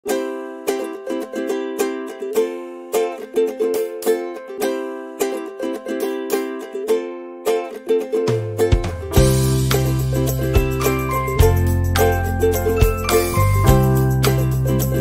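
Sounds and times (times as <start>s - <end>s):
bouncy plucked chord music: 0.0s - 15.0s.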